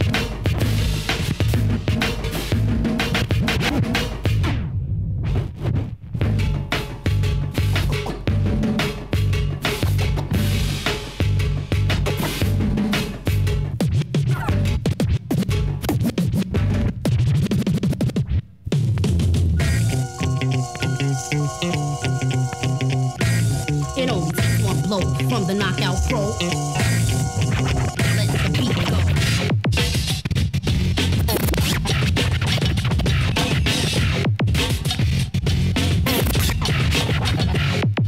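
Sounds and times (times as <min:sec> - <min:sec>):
bass-heavy beat: 0:00.0 - 0:04.5, 0:06.1 - 0:38.0
vinyl record scratching: 0:00.0 - 0:06.1, 0:07.6 - 0:08.3, 0:11.9 - 0:18.4, 0:19.6 - 0:38.0.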